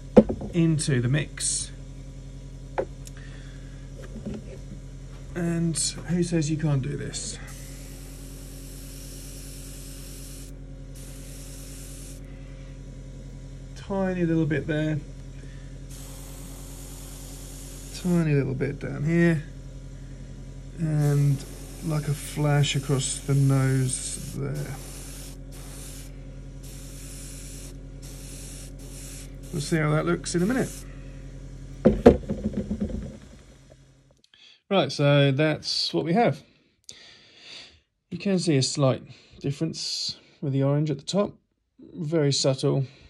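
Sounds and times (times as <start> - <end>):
air compressor hum: 0.0 - 34.2
hard objects knocking on table: 0.1 - 0.6, 31.9 - 33.4
sharp knocks: 0.1 - 0.6, 31.8 - 33.4
airbrush spraying hiss: 7.0 - 12.8, 15.6 - 18.5, 20.8 - 31.0.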